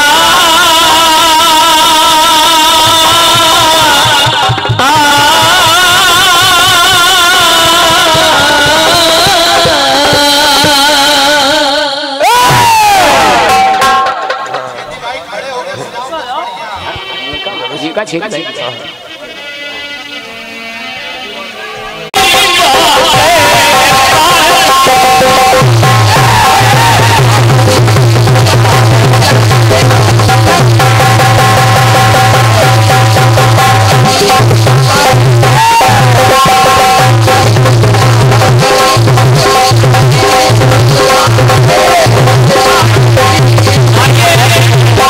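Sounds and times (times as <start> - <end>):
harmonium melody: 0.0 - 12.1, 13.5 - 45.0
person shouting over loudspeaker: 12.2 - 13.8, 34.9 - 37.0
quick drum beat: 22.2 - 45.0.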